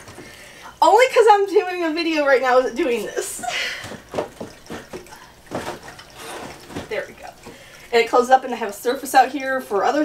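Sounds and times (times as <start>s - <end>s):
wooden knocks and clunks: 3.8s - 7.6s.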